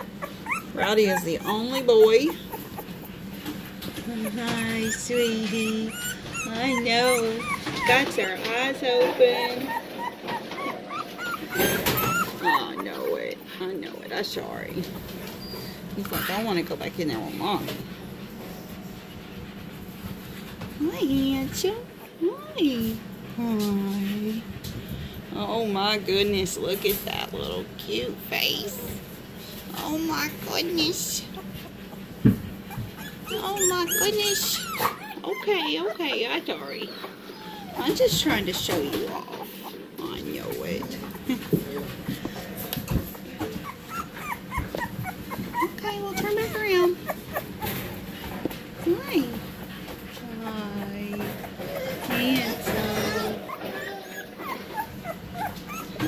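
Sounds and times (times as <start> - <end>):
faint puppy sounds: 0.0 - 3.3, 4.0 - 16.6, 28.2 - 56.0
woman speaking high-pitched: 0.8 - 2.4, 4.1 - 9.7, 20.8 - 24.4, 33.3 - 34.6, 45.8 - 47.0, 48.8 - 49.4, 52.0 - 53.4.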